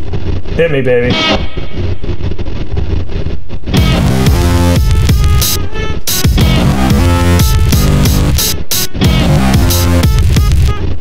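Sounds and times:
song playing: 3.8s - 10.9s.

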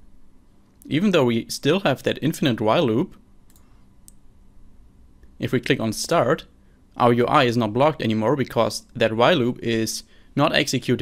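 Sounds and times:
low room noise: 0.0s - 11.0s
computer mouse or key clicks: 3.5s - 4.2s.

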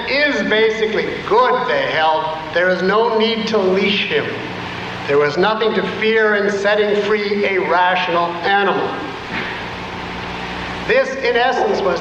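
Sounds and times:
steady hiss: 0.0s - 12.0s.

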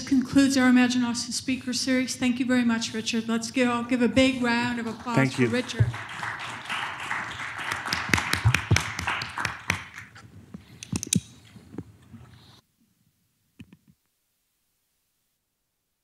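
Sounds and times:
small audience applause: 4.6s - 10.2s.

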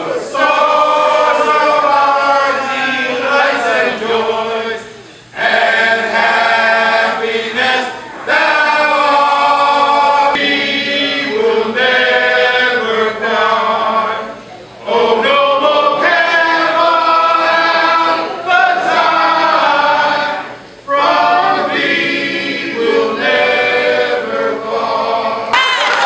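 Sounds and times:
men singing in harmony: 0.0s - 25.6s.

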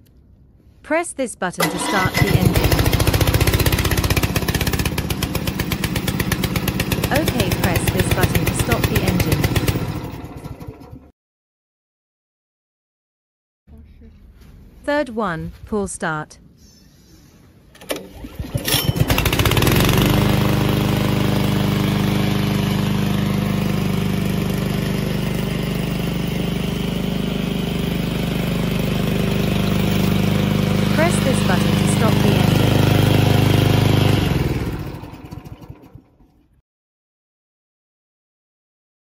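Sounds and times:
engine running: 1.6s - 11.1s, 17.7s - 36.6s
recoil starter pull: 1.6s - 11.1s, 17.7s - 20.9s, 31.7s - 36.6s.

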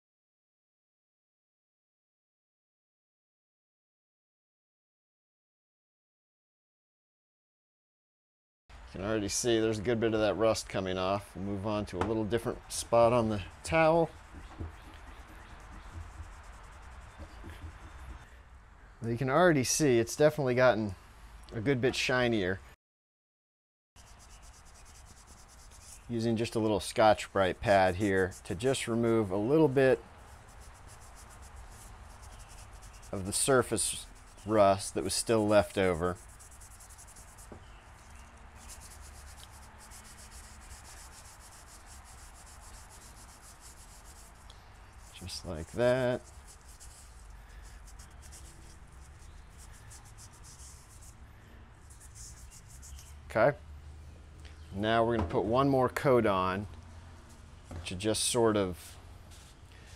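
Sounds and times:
cloth rubbing on metal: 12.6s - 18.3s, 24.0s - 51.2s, 51.9s - 53.2s, 57.3s - 59.9s
abrasive pad scrubbing metal: 12.7s - 18.2s, 24.0s - 37.5s, 38.6s - 51.2s
soft handling bumps: 13.1s - 16.4s, 17.2s - 18.3s, 57.3s - 58.2s.

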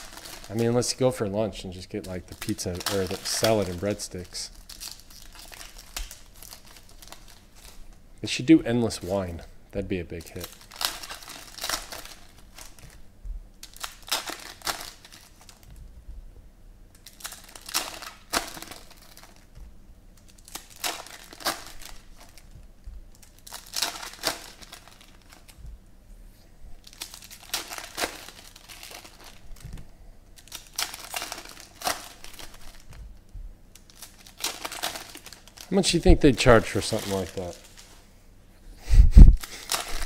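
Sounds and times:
foil wrappers crinkling and tearing: 0.0s - 8.0s, 8.8s - 13.0s, 13.6s - 15.8s, 16.9s - 25.6s, 26.8s - 38.0s, 39.2s - 40.0s.

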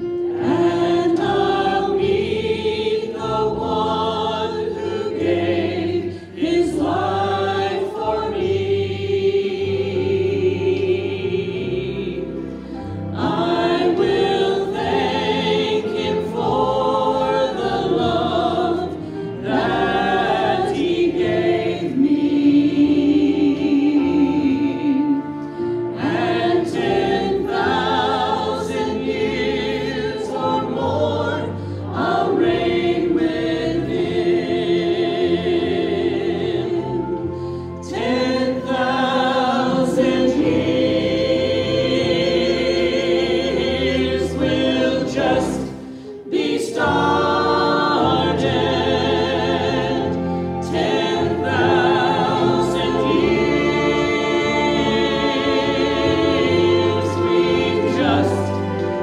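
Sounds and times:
choir singing: 0.0s - 59.0s
instrumental accompaniment: 0.0s - 59.0s.

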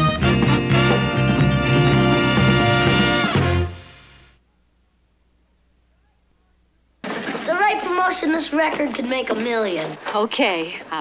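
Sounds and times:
television dialogue: 4.4s - 11.0s.

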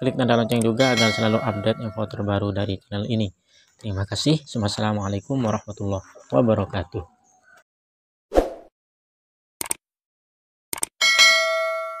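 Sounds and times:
quick clicks: 9.6s - 9.8s, 10.7s - 10.9s.

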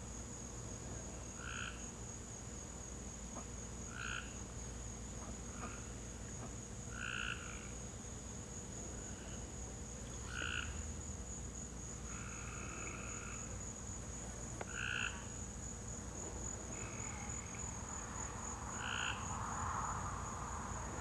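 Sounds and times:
frog croaking: 1.3s - 1.9s, 3.8s - 4.4s, 5.5s - 7.8s, 10.1s - 11.0s, 12.0s - 13.8s, 14.6s - 15.5s, 16.4s - 21.0s
high-pitched insect drone: 16.6s - 21.0s.

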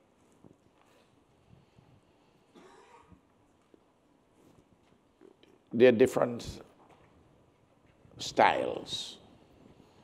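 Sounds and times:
faint short cough: 2.5s - 3.2s.

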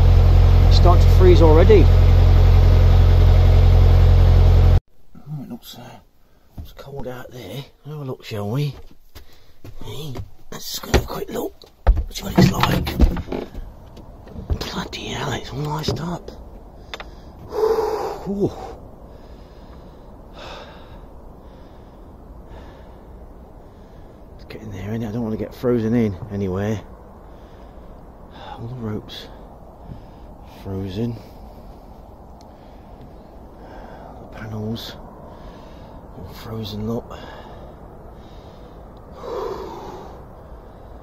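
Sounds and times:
steady low rumble: 0.0s - 4.8s, 10.0s - 41.0s
man breathing sharply: 9.2s - 9.7s, 16.7s - 24.4s, 27.2s - 28.6s, 29.8s - 30.5s, 31.2s - 34.3s, 35.2s - 36.1s, 37.1s - 41.0s.

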